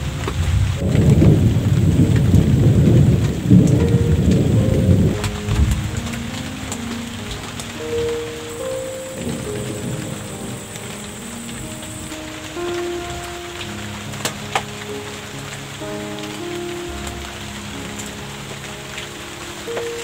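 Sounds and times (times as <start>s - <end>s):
rain pattering: 0.0s - 20.0s
soft background music: 0.0s - 20.0s
thunder rumbling: 0.0s - 20.0s.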